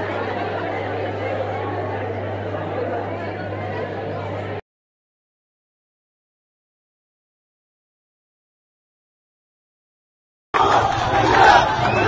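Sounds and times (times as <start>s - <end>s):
crowd chatter: 0.0s - 4.6s, 10.6s - 12.0s.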